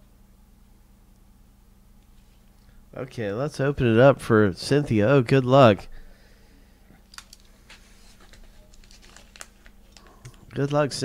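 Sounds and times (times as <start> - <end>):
low steady hum: 0.0 - 11.0
paper mailer crinkling: 7.2 - 11.0.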